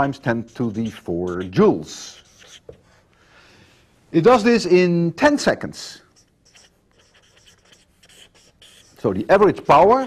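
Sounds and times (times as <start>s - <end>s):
pen scratching on paper: 0.0s - 3.0s, 6.0s - 10.0s.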